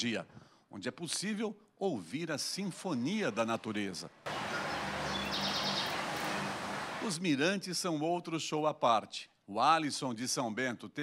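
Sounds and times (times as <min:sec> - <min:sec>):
steady forest hiss: 0:04.3 - 0:07.2
bird chirping trill: 0:04.4 - 0:06.8.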